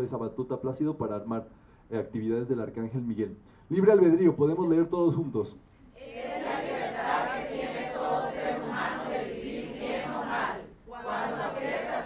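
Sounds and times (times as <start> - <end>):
group reading aloud in unison: 5.9 - 12.0.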